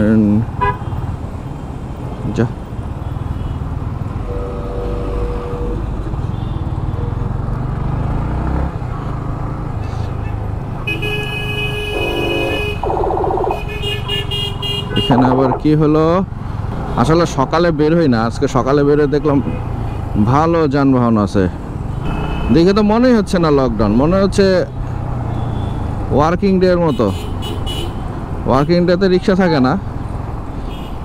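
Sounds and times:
traffic: 0.0s - 31.0s
vehicle horns tooting: 0.6s - 1.0s, 4.2s - 7.3s, 10.8s - 15.6s, 21.9s - 22.8s, 26.8s - 28.0s
motorcycle engine rumbling: 11.7s - 17.9s.

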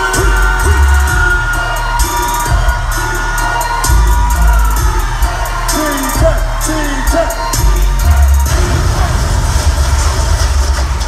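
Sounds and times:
crowd noise: 0.0s - 11.0s
heavy bass rumble from speakers: 0.0s - 11.0s.

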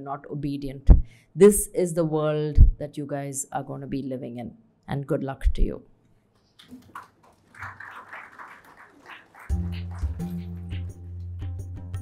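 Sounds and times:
light applause: 6.6s - 11.2s.

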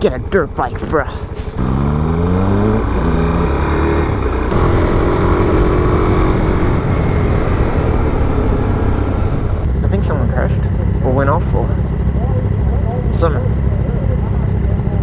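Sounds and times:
motorcycle engine accelerating: 0.0s - 15.0s
rushing wind noise: 2.4s - 15.0s.

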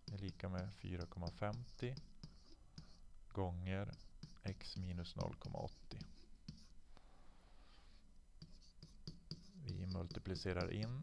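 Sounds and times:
pen scratching on tablet screen: 0.0s - 3.1s, 3.7s - 6.8s, 7.6s - 11.0s.

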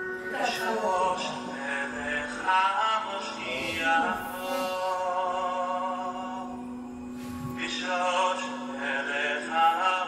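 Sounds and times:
men singing a cappella: 0.3s - 10.0s.

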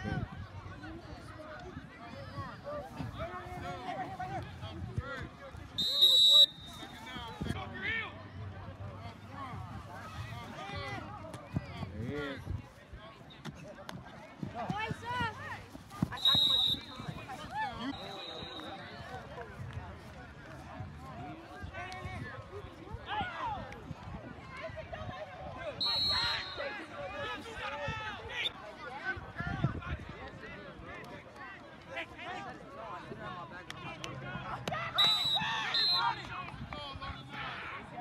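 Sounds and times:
voices shouting and talking: 0.0s - 38.0s
shrill whistle blasts: 5.8s - 7.0s, 16.2s - 17.2s, 17.8s - 18.7s, 25.8s - 26.7s, 35.0s - 36.2s.

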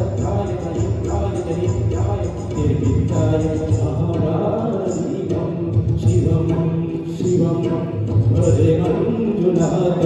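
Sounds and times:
keyboard: 0.0s - 10.0s
man singing into a microphone: 0.0s - 10.0s
tabla: 0.0s - 10.0s.

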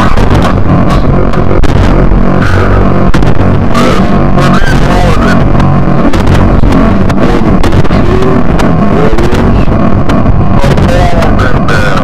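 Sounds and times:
industrial noise music: 0.0s - 12.0s.

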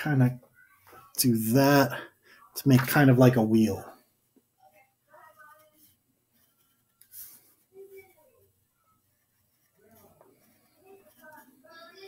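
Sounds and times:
faint murmur of voice: 4.5s - 12.0s
marker scratching on board: 8.9s - 11.6s.

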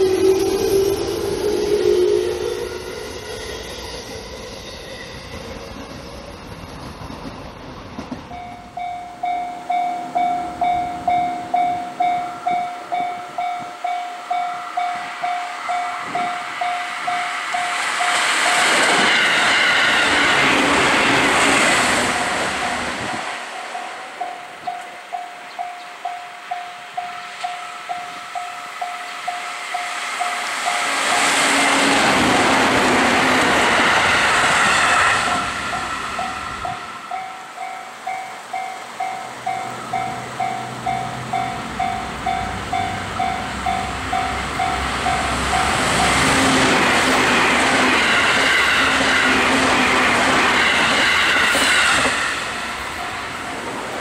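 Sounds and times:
electric train passing: 0.0s - 54.0s
level crossing bell ringing: 8.4s - 17.8s.

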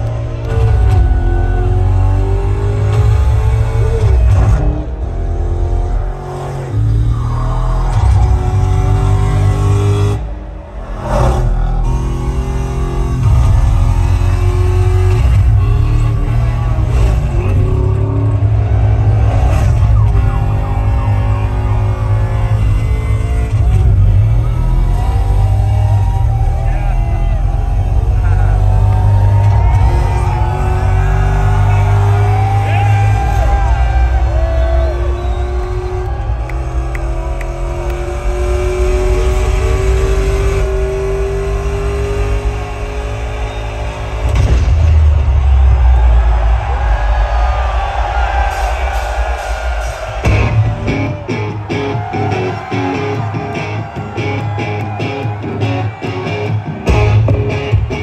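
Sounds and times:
car engine revving: 0.0s - 46.8s, 47.4s - 58.0s.

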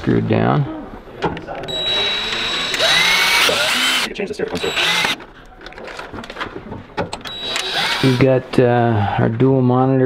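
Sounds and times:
driver bit clicking on screws: 1.7s - 5.3s, 7.2s - 8.2s
power driver whirring: 1.7s - 5.3s, 7.2s - 8.3s.

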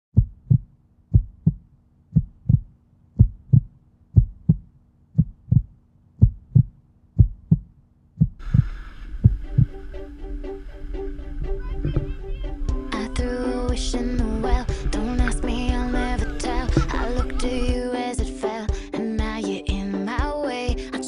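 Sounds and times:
heartbeat thumps: 0.2s - 10.0s, 11.2s - 20.9s
music: 8.4s - 21.0s.

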